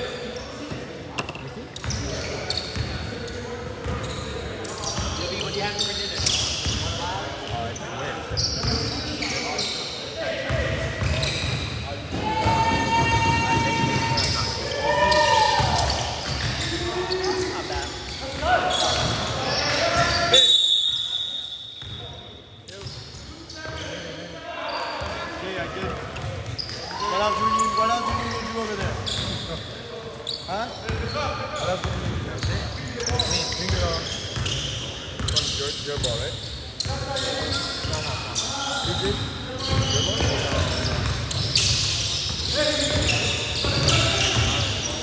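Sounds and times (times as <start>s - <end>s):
players calling out: 7.8s - 20.4s
short high whistle: 20.3s - 21.6s.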